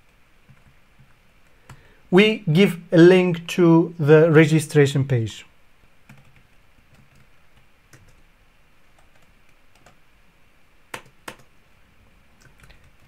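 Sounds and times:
keyboard typing: 0.4 - 1.8, 6.0 - 8.2, 9.0 - 10.0, 10.9 - 11.5, 12.4 - 13.0.

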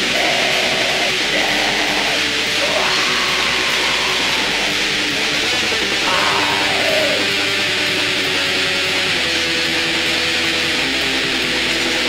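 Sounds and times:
bass: 0.0 - 12.0
distorted electric guitar: 0.0 - 12.0
drums: 0.0 - 12.0.

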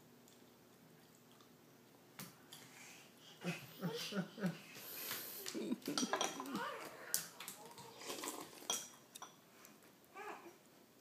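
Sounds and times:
small child vocalizing: 10.2 - 10.6.

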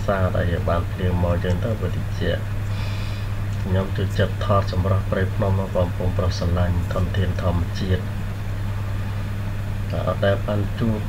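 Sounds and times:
background hiss: 0.0 - 11.0
steady low hum: 0.0 - 11.0.

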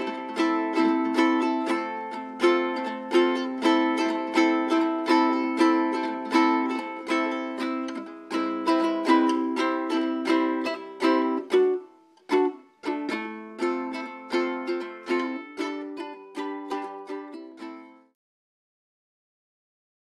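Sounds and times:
ukulele strumming chords: 0.0 - 18.2.

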